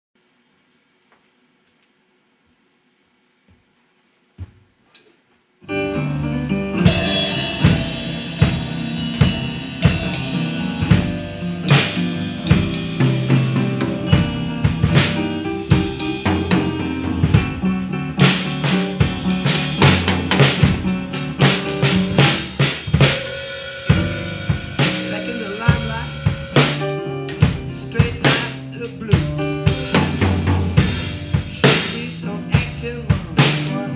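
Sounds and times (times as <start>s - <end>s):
recorded band track: 5.0s - 33.9s
live acoustic drum kit: 5.7s - 33.9s.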